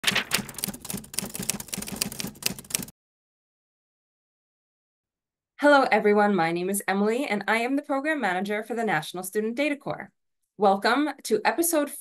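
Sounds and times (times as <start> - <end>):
typewriter key clacks: 0.0 - 2.9.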